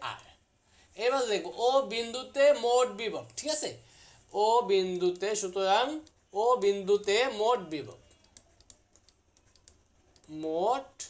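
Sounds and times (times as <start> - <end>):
stylus tapping on pen tablet: 8.1 - 10.4.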